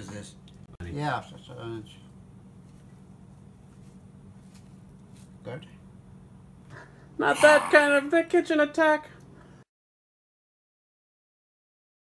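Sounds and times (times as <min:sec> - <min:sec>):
low steady hum: 0:00.0 - 0:09.7.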